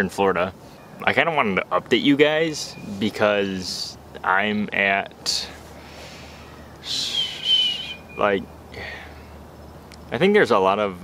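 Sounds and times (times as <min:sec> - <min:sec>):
bird raspy whistled call: 0:05.8 - 0:09.4.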